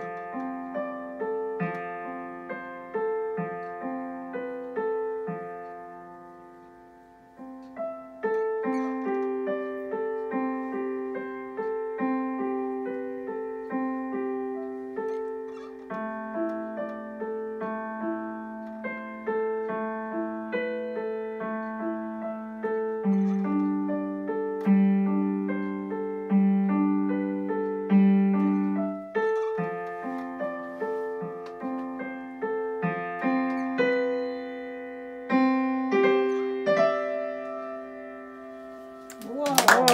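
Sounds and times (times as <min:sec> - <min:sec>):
digital piano playing: 0:00.0 - 0:39.9.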